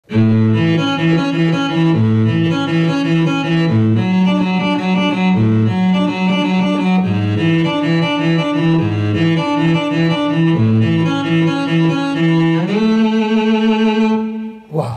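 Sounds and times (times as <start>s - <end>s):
cello melody: 0.0s - 14.7s.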